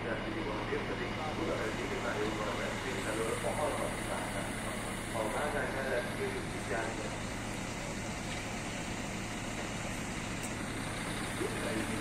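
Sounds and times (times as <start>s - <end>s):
distant electric locomotive: 0.0s - 12.0s.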